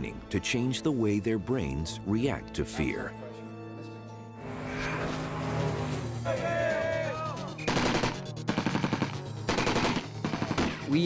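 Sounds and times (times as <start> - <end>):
automatic rifle fire bursts: 7.7 - 11.0.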